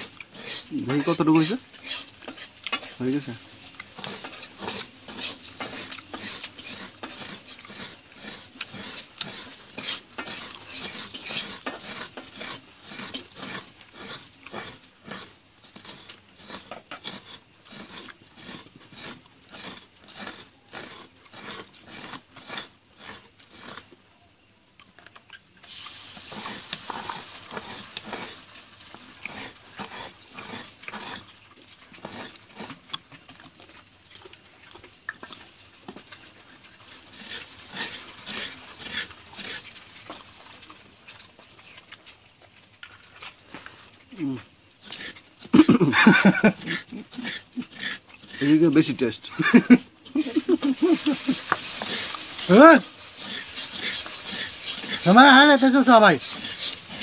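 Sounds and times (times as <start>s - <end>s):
spoon scraping coconut flesh: 0.0s - 24.4s, 25.1s - 42.1s, 42.8s - 57.0s.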